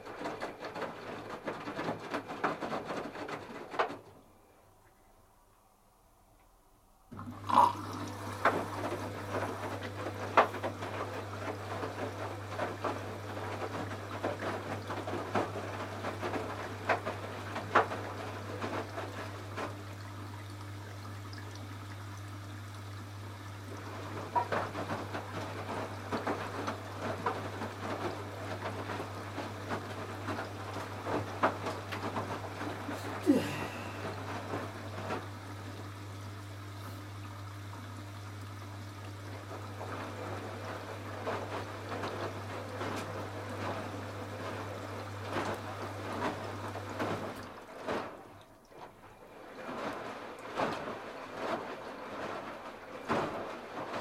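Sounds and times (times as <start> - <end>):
water sloshing in washing machine: 0.0 - 4.4, 7.1 - 54.0.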